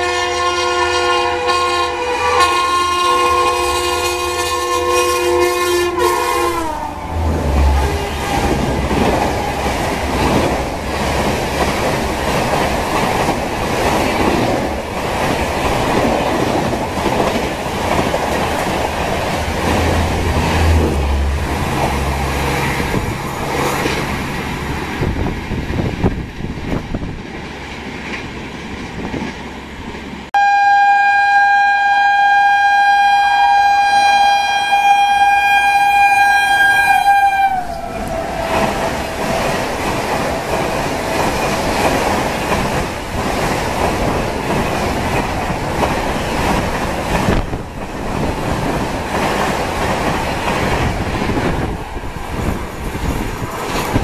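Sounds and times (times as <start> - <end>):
locomotive horn: 0.0 - 9.8, 30.4 - 41.9
train wheels clattering over rails: 7.9 - 30.1, 38.0 - 54.0.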